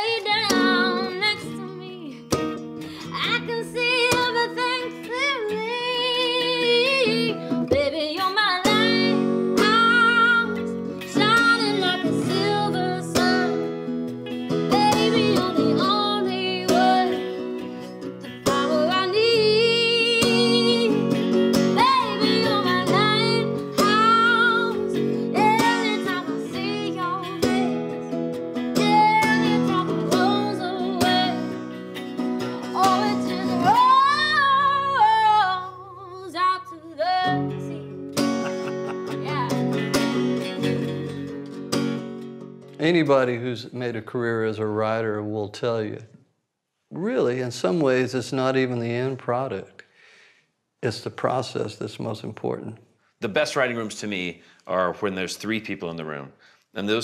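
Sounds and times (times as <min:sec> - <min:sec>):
woman singing: 0:00.0 - 0:13.8, 0:14.6 - 0:31.7, 0:32.4 - 0:38.0, 0:38.8 - 0:41.0
acoustic guitar: 0:00.0 - 0:57.0.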